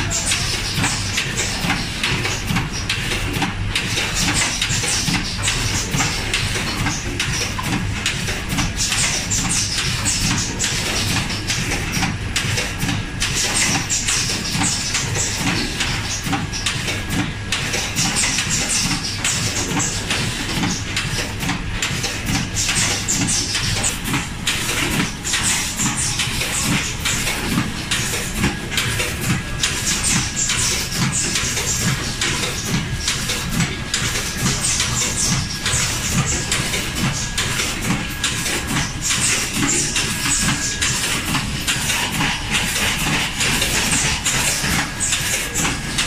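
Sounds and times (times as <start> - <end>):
machine clattering: 0.0 - 46.0.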